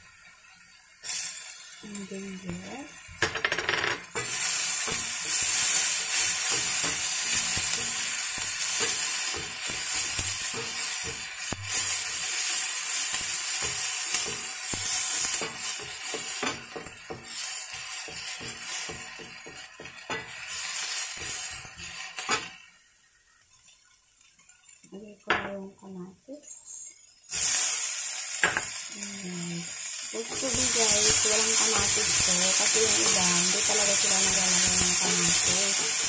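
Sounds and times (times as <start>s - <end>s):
onion sizzling in hot oil: 0.0s - 36.0s
spatula scraping wok: 1.0s - 22.6s, 29.8s - 36.0s.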